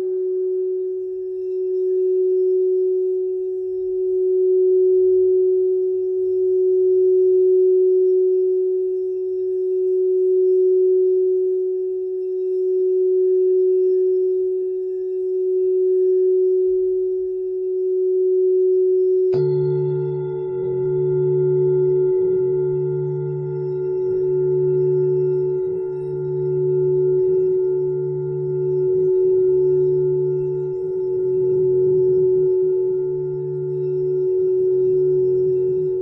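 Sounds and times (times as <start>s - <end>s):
singing bowl low tone: 0.0s - 36.0s.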